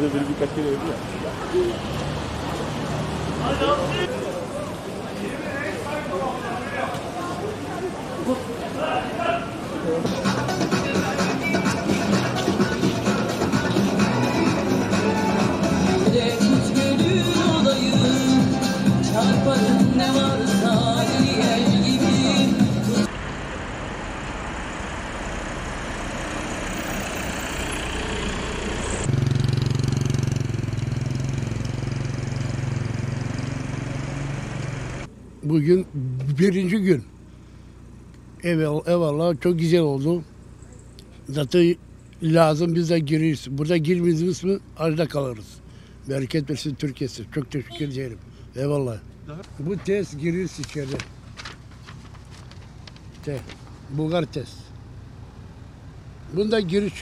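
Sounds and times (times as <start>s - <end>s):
street traffic noise: 0.0s - 57.0s
car engine idling: 10.1s - 57.0s
paper rustling and crinkling: 49.5s - 53.8s.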